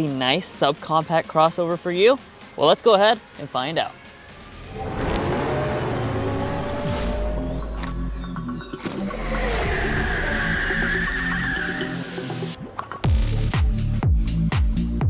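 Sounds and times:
logo jingle music: 4.0 - 9.2
car tire squeal: 4.5 - 12.6.

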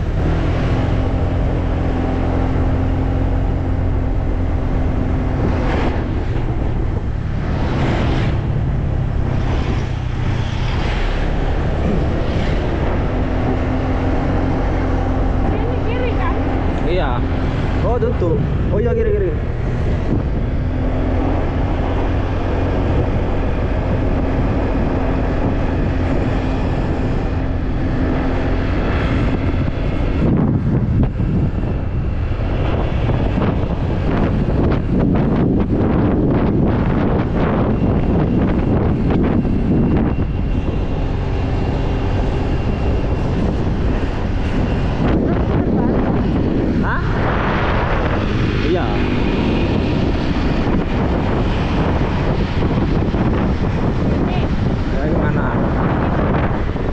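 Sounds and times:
motorcycle engine cruising: 0.0 - 56.9
wind rushing over microphone: 0.0 - 56.9.

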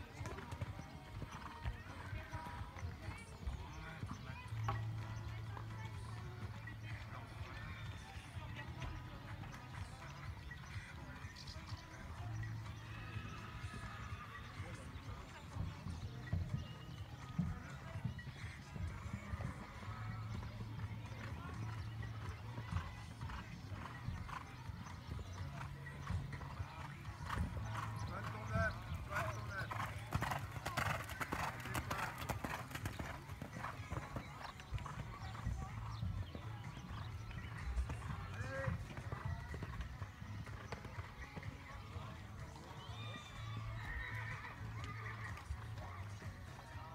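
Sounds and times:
horse hooves cantering on sand: 0.0 - 41.9.

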